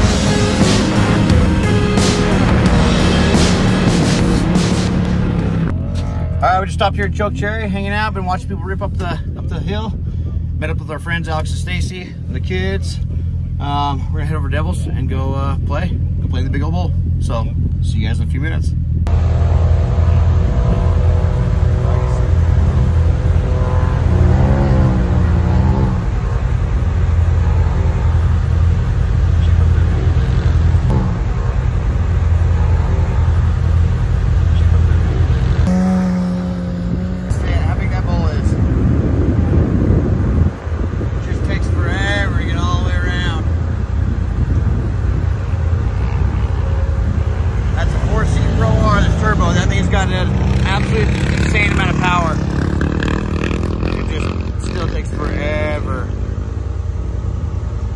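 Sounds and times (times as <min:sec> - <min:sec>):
engines idling: 0:00.0 - 0:57.9
vehicle revving and pulling away: 0:00.0 - 0:57.9
voices: 0:19.9 - 0:35.7, 0:37.2 - 0:56.2.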